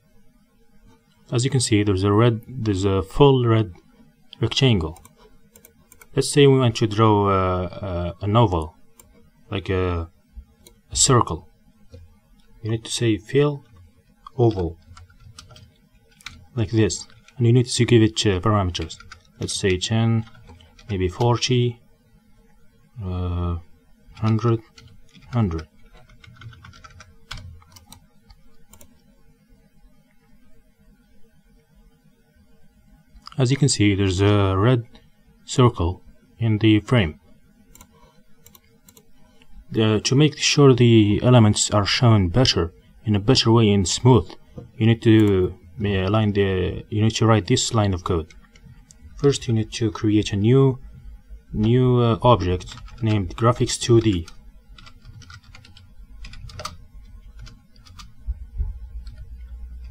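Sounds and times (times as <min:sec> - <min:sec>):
low steady hum: 0:00.0 - 0:59.9
keyboard keystrokes: 0:14.5 - 0:16.4, 0:26.0 - 0:28.9, 0:54.1 - 0:56.8, 0:57.4 - 0:58.2.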